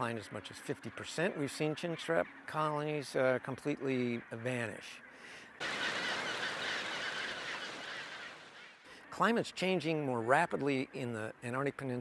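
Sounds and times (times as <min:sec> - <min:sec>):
penguins calling: 0:05.2 - 0:08.8.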